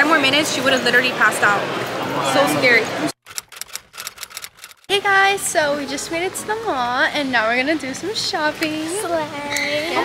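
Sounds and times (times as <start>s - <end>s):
rapid light clicks: 3.3s - 4.9s.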